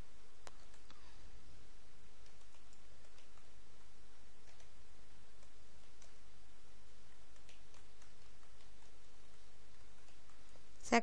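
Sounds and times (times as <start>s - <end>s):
background hiss: 0.0s - 11.0s
keyboard and mouse clicks: 0.4s - 1.0s, 2.2s - 6.2s, 7.1s - 10.6s.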